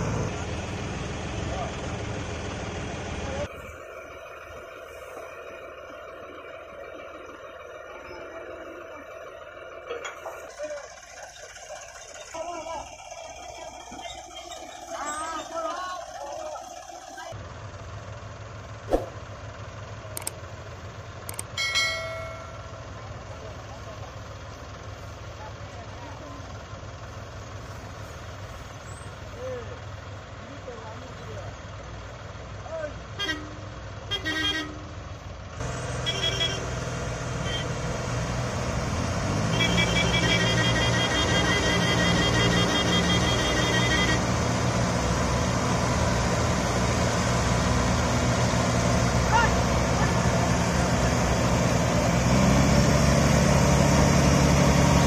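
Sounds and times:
combine harvester engines running: 0:00.0 - 0:55.0
voices: 0:03.1 - 0:17.4, 0:21.7 - 0:34.9, 0:39.4 - 0:44.4, 0:48.7 - 0:51.0
vehicle horn toot: 0:33.2 - 0:34.9, 0:36.0 - 0:36.8, 0:37.4 - 0:37.8, 0:39.4 - 0:44.3.

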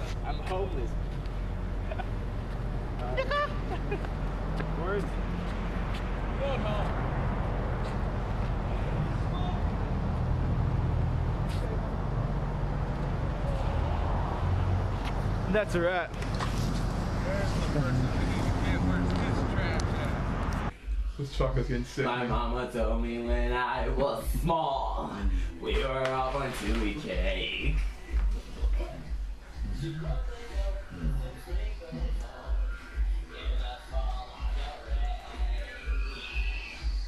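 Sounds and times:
road traffic rumble: 0:00.0 - 0:20.8
people's voices: 0:15.4 - 0:37.0.

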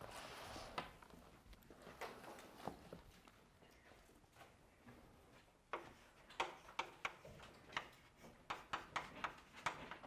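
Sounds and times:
chalk tapping on chalkboard: 0:05.7 - 0:10.0.

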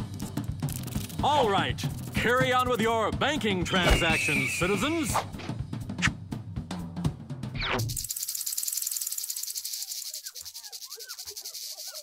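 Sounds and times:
crickets trilling: 0:08.1 - 0:12.0.

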